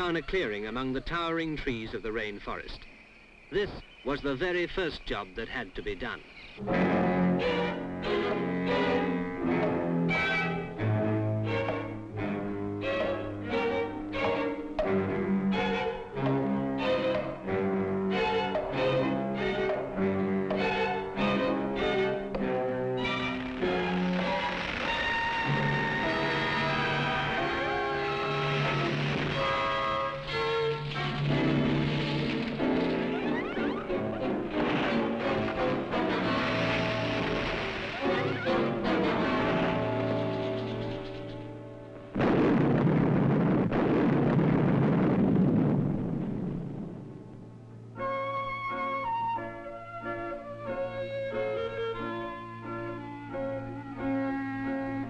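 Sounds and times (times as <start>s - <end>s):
orchestral music with strings: 6.6s - 42.1s, 47.9s - 55.0s
loud crash: 23.2s - 33.9s, 34.5s - 38.6s, 42.1s - 47.3s.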